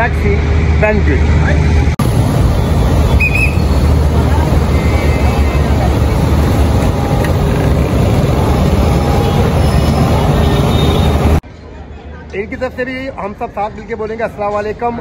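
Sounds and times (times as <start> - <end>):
traffic noise: 0.0 - 15.0
low engine hum: 0.4 - 11.4.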